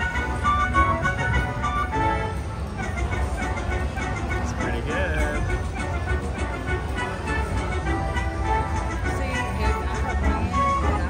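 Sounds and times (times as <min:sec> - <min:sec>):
casino din: 0:00.0 - 0:10.9.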